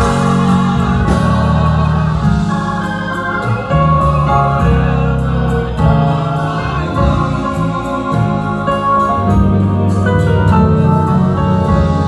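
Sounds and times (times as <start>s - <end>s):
bass guitar: 0.0s - 12.0s
drums: 0.0s - 12.0s
electronic keyboard chords: 0.0s - 12.0s
organ: 0.0s - 12.0s.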